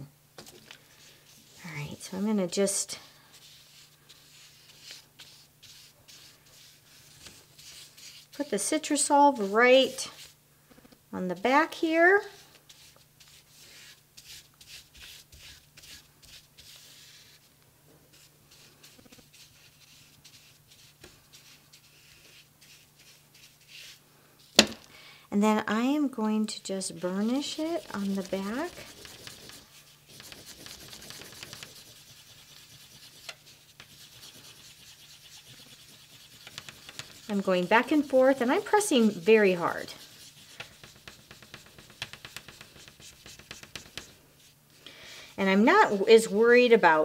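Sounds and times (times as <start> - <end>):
wooden tool rubbing on paper: 3.3 - 10.4, 12.4 - 17.5, 18.1 - 24.6, 26.6 - 44.6
sharp knock: 24.6 - 24.8.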